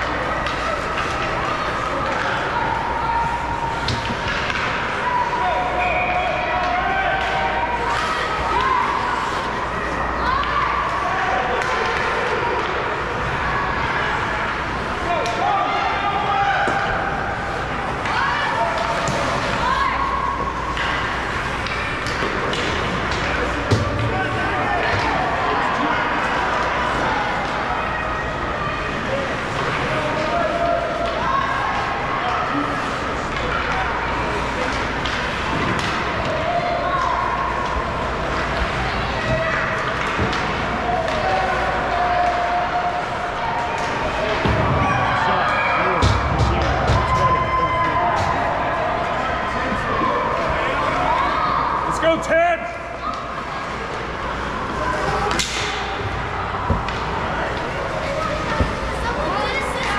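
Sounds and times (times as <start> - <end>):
spectator voices in a hall: 0.0 - 59.9
knocks of hockey sticks and puck: 55.2 - 57.7.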